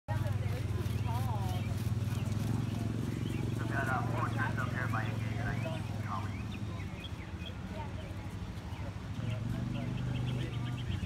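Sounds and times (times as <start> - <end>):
voices talking: 0.1 - 11.0.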